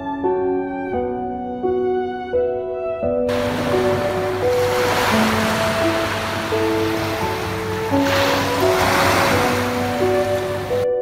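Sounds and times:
slow melodic music: 0.0s - 11.0s
waves washing onto beach: 3.3s - 11.0s.

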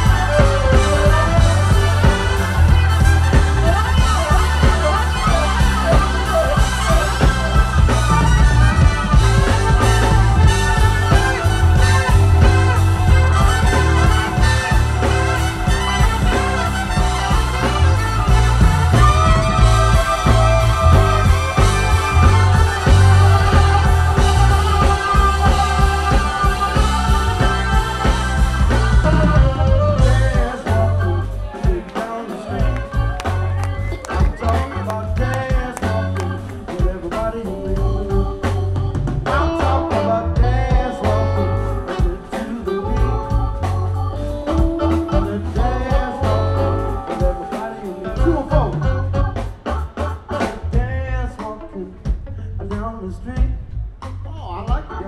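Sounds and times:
organ: 0.0s - 52.2s
drum kit beat: 0.0s - 52.8s
bending organ or guitar line: 0.0s - 55.0s
electric bass: 0.0s - 55.0s
electric guitar: 0.0s - 55.0s
funk band playing: 0.0s - 55.0s.

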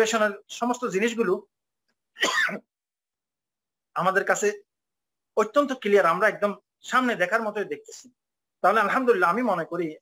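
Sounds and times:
man clearing throat: 2.2s - 2.7s.

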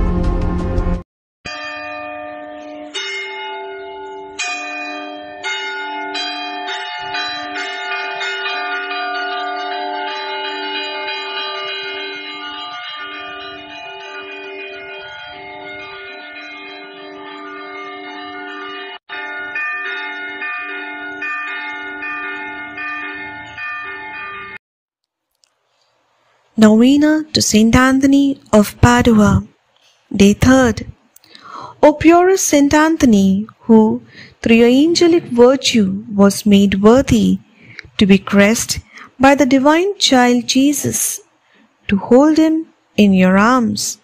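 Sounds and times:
church bells ringing: 1.5s - 24.6s, 33.5s - 41.2s.

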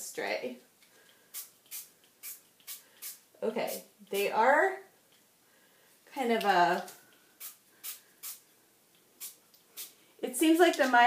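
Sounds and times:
spray bottle hissing: 1.3s - 3.8s, 7.4s - 8.4s, 9.2s - 10.0s.

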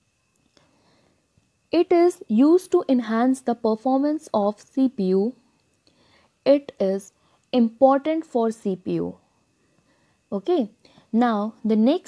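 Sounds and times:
person narrating: 6.5s - 9.2s, 10.3s - 12.0s.

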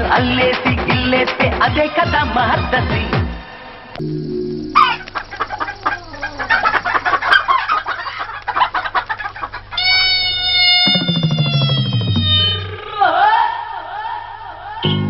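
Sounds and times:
bass notes: 4.0s - 5.1s, 10.9s - 12.8s
rapid hen-like clucking: 4.8s - 11.6s.

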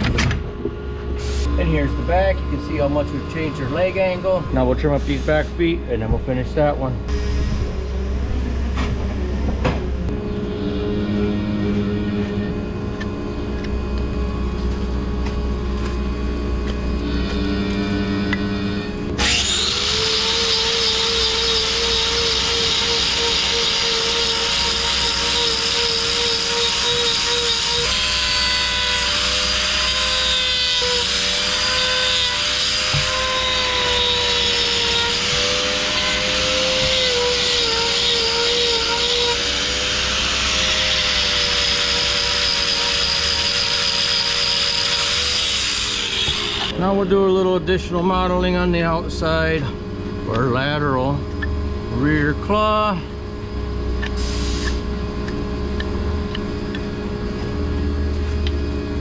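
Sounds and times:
low machine hum: 0.0s - 59.0s
angle grinder on hoof: 16.6s - 46.8s.

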